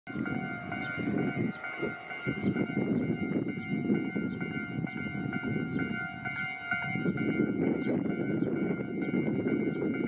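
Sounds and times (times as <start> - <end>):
electric train rumble: 0.1 - 10.0.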